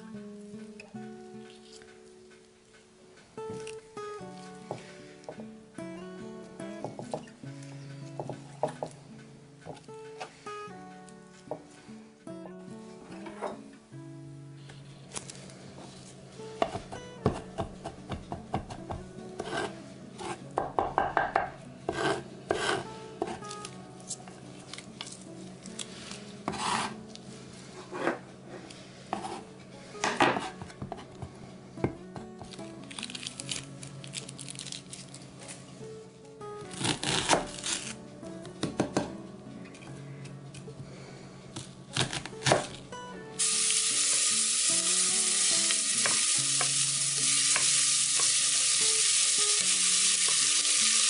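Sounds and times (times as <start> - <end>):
soft background music: 0.0 - 51.0
knife chopping on wooden board: 16.6 - 23.4.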